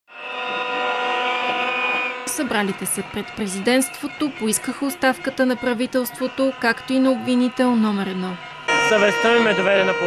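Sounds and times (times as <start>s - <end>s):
crowd blowing horns: 0.1s - 10.0s.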